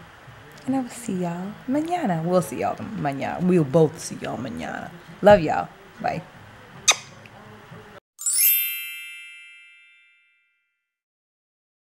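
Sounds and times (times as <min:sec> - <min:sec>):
shimmering chime: 0:08.2 - 0:10.6.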